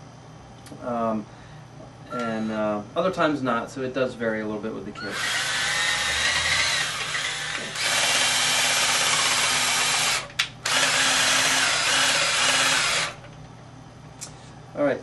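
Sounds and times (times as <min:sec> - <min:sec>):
electric drill stirring liquid: 0:05.1 - 0:13.3.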